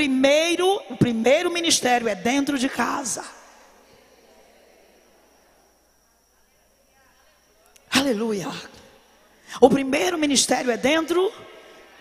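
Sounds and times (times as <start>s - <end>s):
faint voices murmuring: 3.7s - 7.9s.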